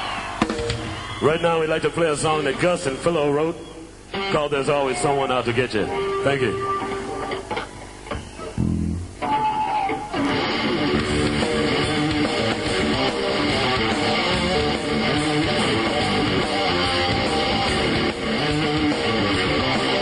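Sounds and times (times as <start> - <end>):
strummed electric guitar: 4.1 - 20.0
live rock band playing: 5.9 - 7.5, 8.5 - 20.0
bass guitar notes: 8.2 - 20.0.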